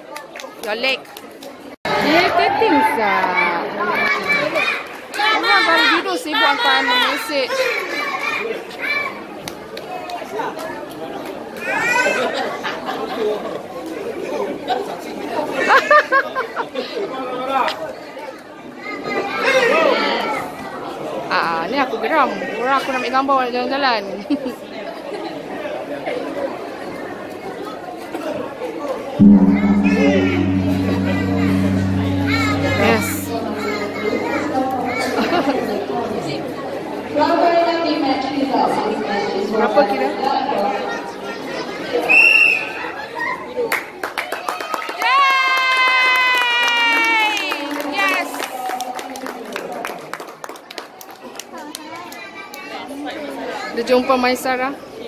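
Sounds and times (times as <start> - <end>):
chatter of spectators in hall: 0.0 - 20.5
low hum of music: 29.2 - 37.0.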